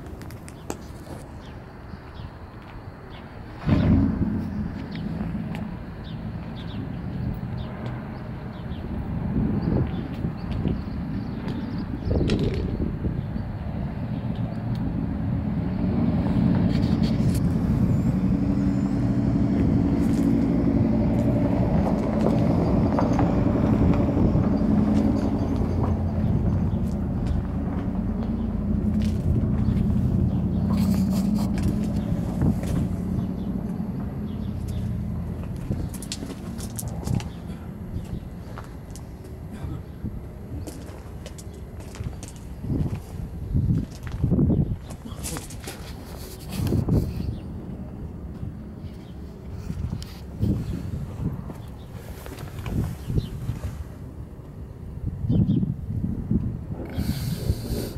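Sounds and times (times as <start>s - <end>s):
low engine-like rumble: 0.0s - 57.9s.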